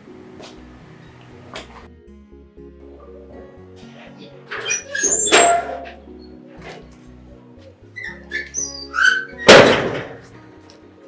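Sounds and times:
background music: 0.0s - 11.0s
door hinges squeaking: 4.5s - 6.9s, 8.0s - 10.3s.

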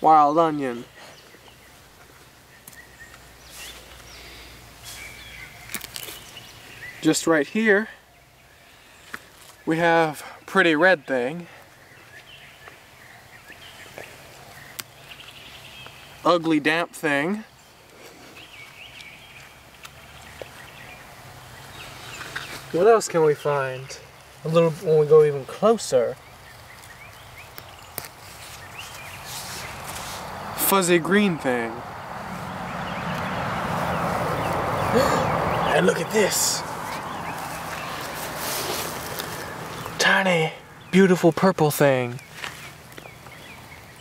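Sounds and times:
soft rustles: 26.2s - 30.4s, 36.7s - 40.0s.

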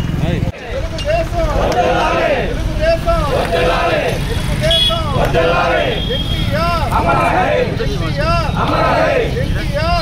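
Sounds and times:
men chanting slogans: 0.4s - 10.0s.

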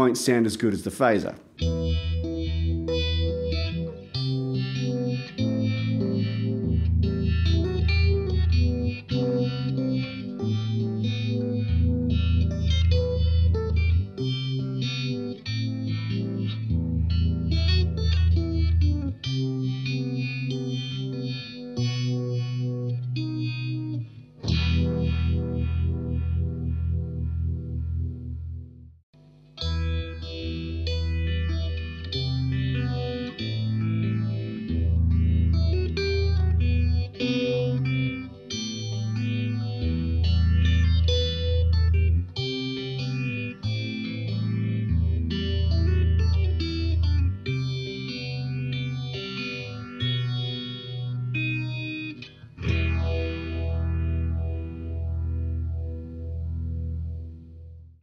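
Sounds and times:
electric guitar through phaser: 0.0s - 28.9s, 29.6s - 57.9s
electric guitar with vibe effect: 0.0s - 58.0s.

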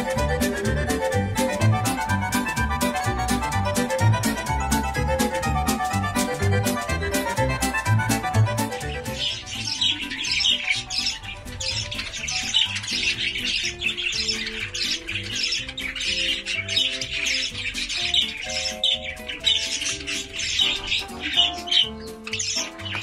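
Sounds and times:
background music with held notes: 0.0s - 23.0s
budgerigars chattering and squawking: 0.0s - 23.0s.

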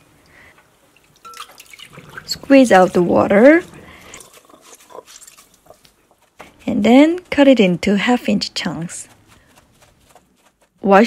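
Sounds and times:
wet squelches: 0.3s - 7.4s
water dripping into glass bowl: 0.9s - 2.5s.

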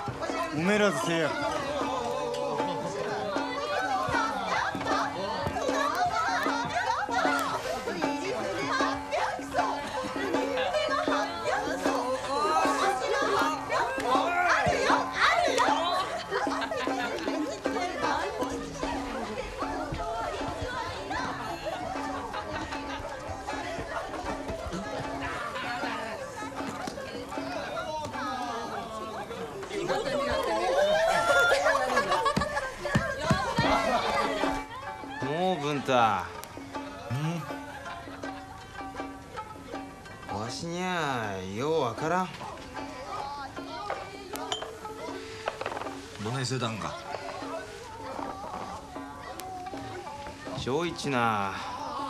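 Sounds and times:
background music: 0.0s - 52.0s
voices chattering and laughing: 0.0s - 52.0s.

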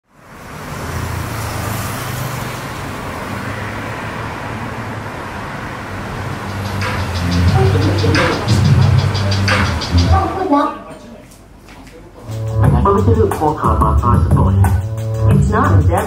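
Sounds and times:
city street traffic rumble: 0.0s - 16.0s
music track with a beat: 6.4s - 10.3s, 12.3s - 16.0s.

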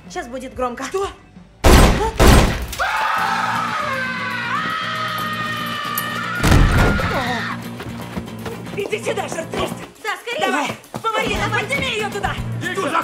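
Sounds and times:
gunshots: 1.6s - 2.8s
loud bang: 1.6s - 2.8s.

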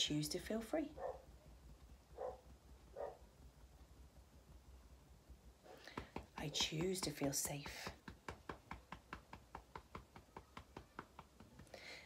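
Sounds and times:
fingertips tapping on body: 5.8s - 12.0s.

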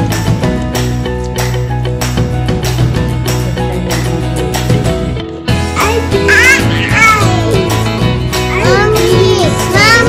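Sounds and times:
music with steady beat: 0.0s - 10.0s.

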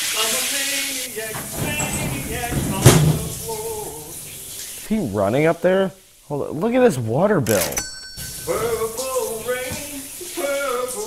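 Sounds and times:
shower water running: 0.0s - 11.0s.

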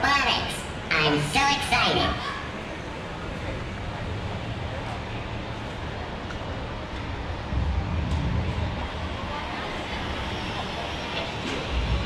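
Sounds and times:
indistinct voices in hall: 0.9s - 12.0s.

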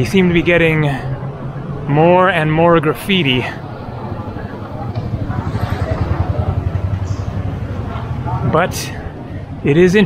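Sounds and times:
motorcycle engine running: 3.7s - 9.2s.

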